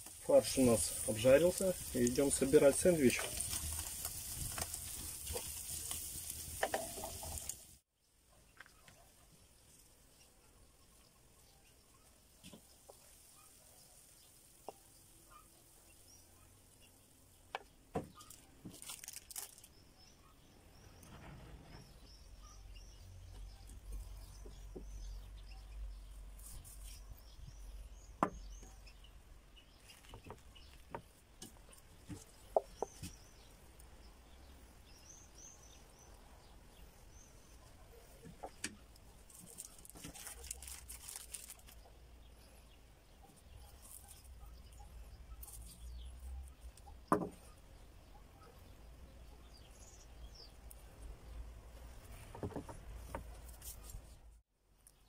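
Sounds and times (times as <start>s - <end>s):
meat sizzling in a frying pan: 0.0s - 7.8s
faint bird chirps: 19.4s - 30.8s.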